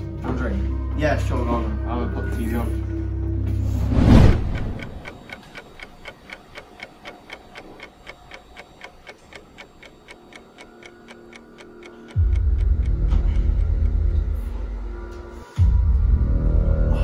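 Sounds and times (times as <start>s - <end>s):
clock ticking: 3.6s - 14.5s
low drone of dark music: 10.7s - 17.0s.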